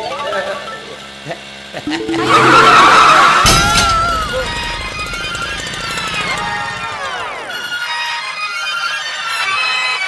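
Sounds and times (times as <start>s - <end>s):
background music: 1.8s - 7.7s
bicycle crash: 2.8s - 7.2s.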